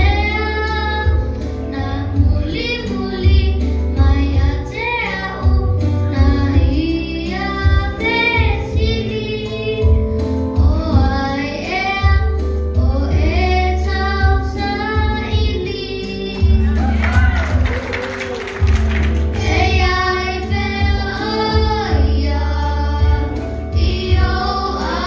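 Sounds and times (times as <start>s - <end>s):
child singing into microphone: 0.0s - 17.4s, 19.4s - 25.0s.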